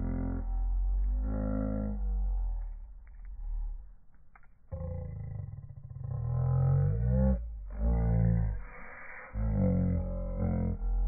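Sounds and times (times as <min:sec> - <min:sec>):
deep droning instrument: 0:00.0 - 0:03.9, 0:04.8 - 0:11.0.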